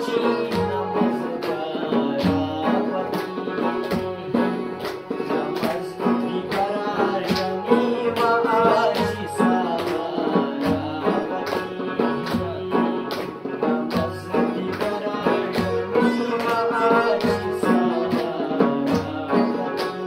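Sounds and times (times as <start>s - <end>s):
dhol drum beat: 0.0s - 19.6s
hand clapping: 0.0s - 20.0s
man singing: 0.0s - 20.0s
plucked sitar: 0.0s - 20.0s.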